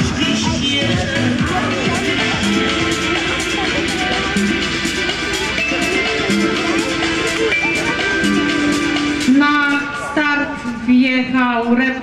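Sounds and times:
announcer over loudspeakers: 0.0s - 12.0s
background music: 0.0s - 12.0s.

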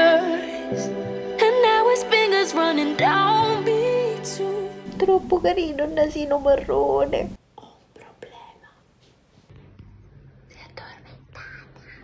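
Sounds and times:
woman whispering: 7.6s - 8.9s, 10.5s - 12.0s.

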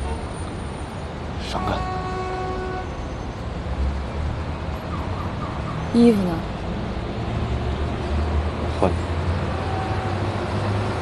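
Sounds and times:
street traffic rumble: 0.0s - 11.0s
held horn-like tone: 1.4s - 3.0s, 9.5s - 10.3s.

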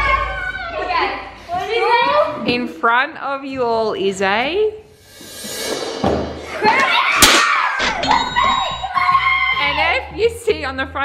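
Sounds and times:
children squealing: 6.5s - 10.0s.

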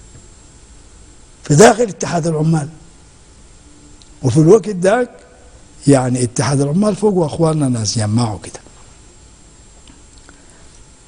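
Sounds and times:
faint hiss: 0.0s - 11.0s
faint small ticks: 9.8s - 10.9s.

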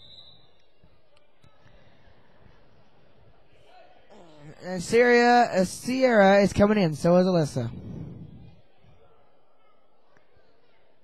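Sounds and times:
crowd and court murmur: 0.0s - 11.0s.

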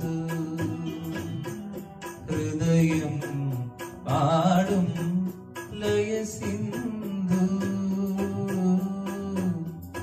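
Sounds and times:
man singing into a microphone: 0.0s - 10.0s
musical accompaniment with steady beat: 0.0s - 10.0s.

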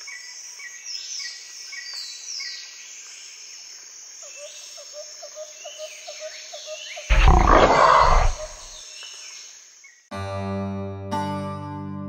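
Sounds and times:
repeating chirps and bird calls: 7.0s - 8.8s
tiger roaring: 7.1s - 8.7s.

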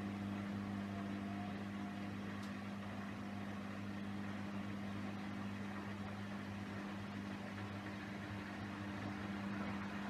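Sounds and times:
washer-dryer electrical hum: 0.0s - 10.0s.

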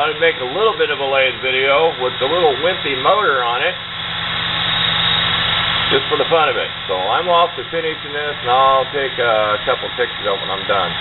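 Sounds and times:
small electric lathe motor humming: 0.0s - 11.0s.

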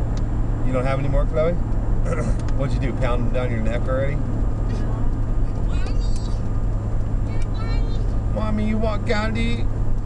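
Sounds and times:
car cabin road and engine drone: 0.0s - 10.0s
child's high voice: 7.3s - 8.1s.

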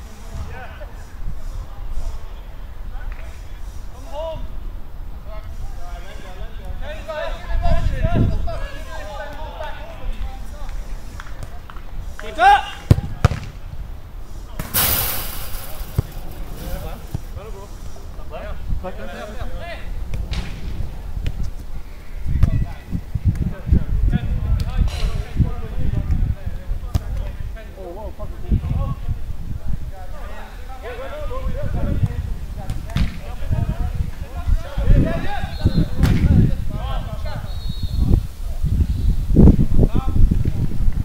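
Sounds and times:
football kick thud: 12.9s - 13.6s, 14.6s - 17.3s, 32.7s - 33.2s, 36.0s - 36.4s
short rush of noise: 14.6s - 17.4s.

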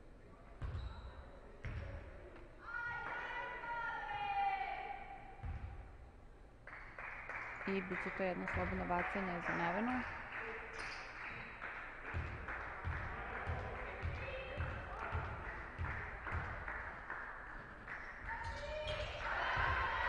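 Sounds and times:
basketball bouncing on hardwood: 12.1s - 16.6s.

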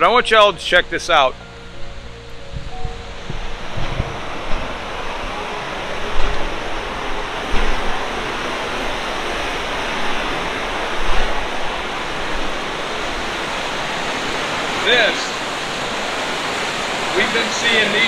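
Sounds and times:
river rushing over rocks: 3.0s - 18.0s.

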